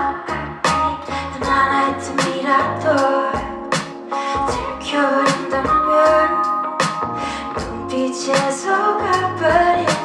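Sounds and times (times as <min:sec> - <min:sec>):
instrumental music with steady beat: 0:00.0 - 0:10.0
woman singing into a microphone: 0:00.0 - 0:10.0.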